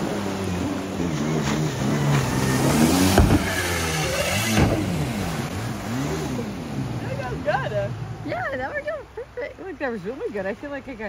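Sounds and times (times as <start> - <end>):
jet ski engine revving: 0.0 - 9.0
sharp noises: 0.2 - 8.3.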